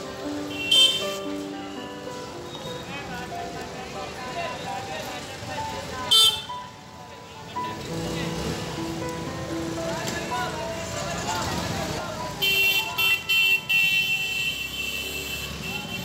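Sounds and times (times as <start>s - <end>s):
music: 0.0s - 13.6s
traffic: 0.0s - 16.0s
loud horn beep: 0.5s - 1.2s, 6.1s - 6.5s
voices: 1.2s - 13.5s.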